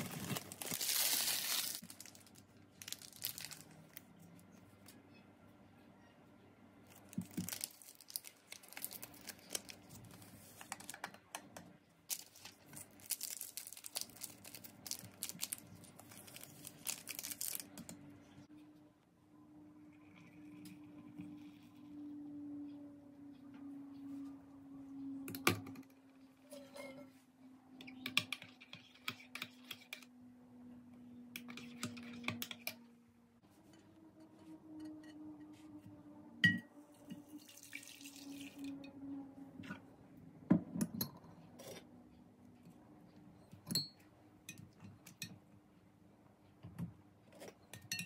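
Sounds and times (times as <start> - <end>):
foil sachets tearing and crinkling: 0.0 - 4.0, 7.3 - 10.2, 12.1 - 17.7.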